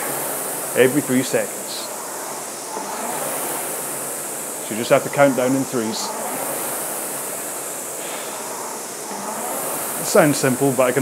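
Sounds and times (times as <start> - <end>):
rowing machine flywheel whooshing: 0.0 - 11.0.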